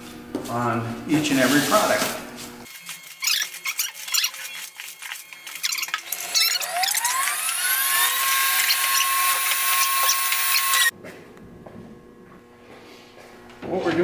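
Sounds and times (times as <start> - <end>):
rising whine: 4.5 - 10.9.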